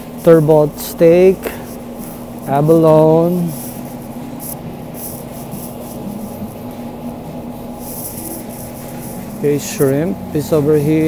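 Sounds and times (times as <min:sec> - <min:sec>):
low machinery hum: 0:00.0 - 0:11.0
faint scratchy rustling: 0:00.1 - 0:11.0.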